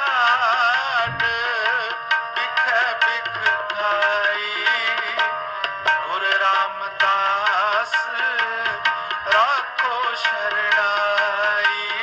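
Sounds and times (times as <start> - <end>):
harmonium: 0.0 - 12.0
man singing: 0.0 - 12.0
tabla strokes: 0.0 - 12.0.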